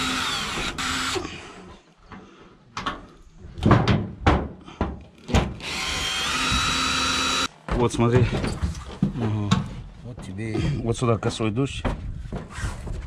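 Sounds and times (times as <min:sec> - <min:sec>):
cordless drill driving screws: 0:00.0 - 0:01.3, 0:05.6 - 0:07.5
sharp knocks and rattles: 0:02.8 - 0:13.0.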